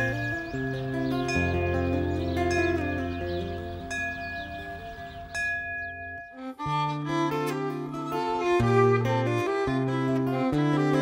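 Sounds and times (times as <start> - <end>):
hand bell ringing: 0.0 - 3.2, 3.8 - 6.4
soft background music: 0.0 - 5.4.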